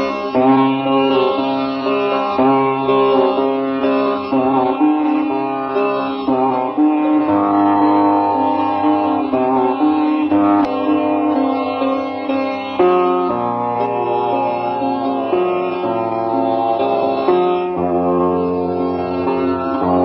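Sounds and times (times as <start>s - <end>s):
low steady drone: 0.0s - 20.0s
sitar melody: 0.0s - 20.0s.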